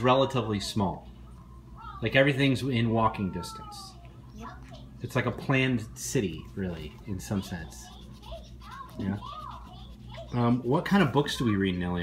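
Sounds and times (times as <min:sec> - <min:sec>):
child speaking softly: 0:07.4 - 0:10.4.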